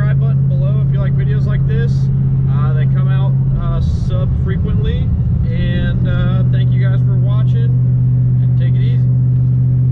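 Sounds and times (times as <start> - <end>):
car engine droning in cabin: 0.0 - 9.9.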